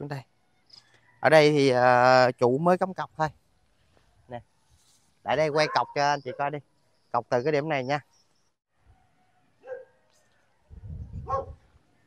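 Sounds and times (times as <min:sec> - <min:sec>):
dog barking: 0:05.5 - 0:06.5, 0:09.6 - 0:10.0, 0:11.2 - 0:11.6.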